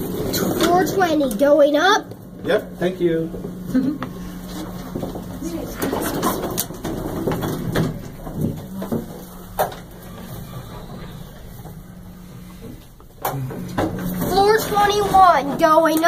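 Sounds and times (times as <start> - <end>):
elevator humming: 0.0 - 16.0.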